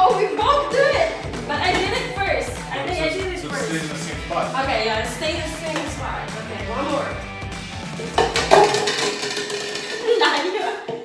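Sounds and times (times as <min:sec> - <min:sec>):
background music: 0:00.0 - 0:10.7
plastic cups knocking on wooden table: 0:08.1 - 0:11.0.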